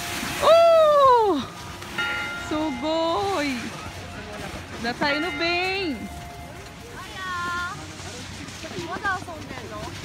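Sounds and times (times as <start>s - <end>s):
busy ski slope background noise: 0.0s - 10.0s.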